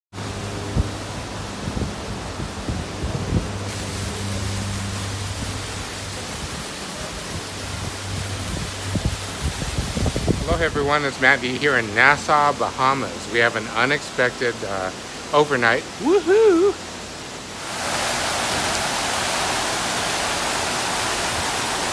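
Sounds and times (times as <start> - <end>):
water splashing from fountains: 0.2 - 21.9
wind on microphone: 0.3 - 4.4, 5.2 - 11.0.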